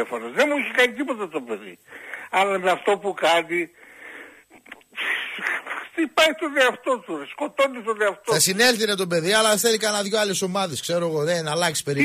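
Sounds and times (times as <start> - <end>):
man breathing into microphone: 1.9 - 2.3, 3.8 - 5.9.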